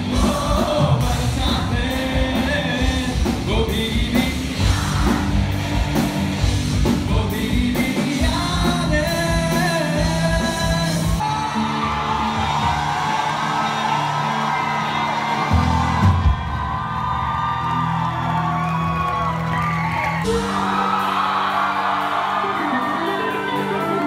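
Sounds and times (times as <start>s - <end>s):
amplified singing: 0.0s - 12.3s
live band music: 0.0s - 14.6s, 19.0s - 24.0s
drums: 0.0s - 24.0s
crowd whooping: 4.4s - 6.9s, 11.0s - 24.0s.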